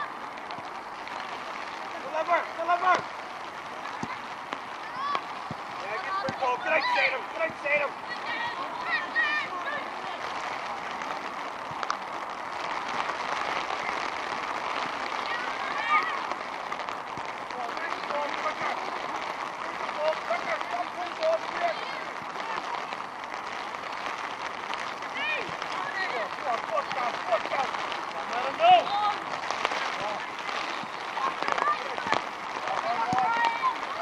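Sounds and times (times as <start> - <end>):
steady hiss: 0.0 - 34.0.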